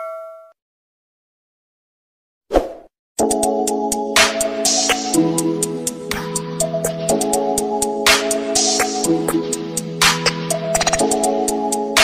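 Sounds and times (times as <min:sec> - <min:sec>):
background music with clicking beat: 0:03.2 - 0:12.0.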